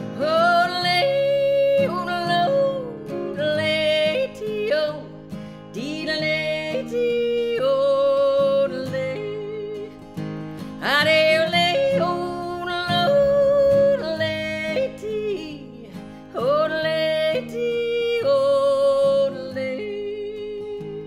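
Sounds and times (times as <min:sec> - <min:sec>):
strummed acoustic guitar: 0:00.0 - 0:21.0
woman singing: 0:00.0 - 0:21.0.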